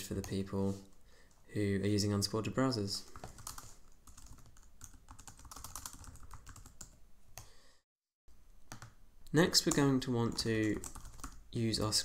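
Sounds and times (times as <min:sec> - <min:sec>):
typing on computer keyboard: 0:03.2 - 0:07.5, 0:10.4 - 0:11.4.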